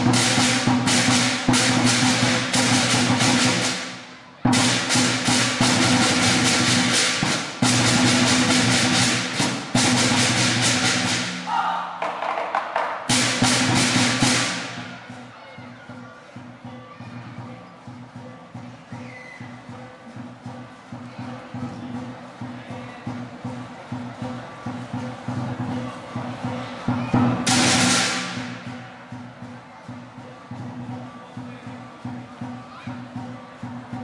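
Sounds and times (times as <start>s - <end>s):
hand cymbals crashing: 0.0s - 11.5s, 27.2s - 29.3s
drum beaten fast: 0.0s - 34.0s.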